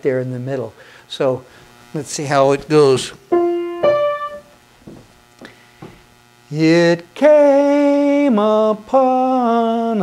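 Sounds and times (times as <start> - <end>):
piano notes ringing: 2.7 - 4.7.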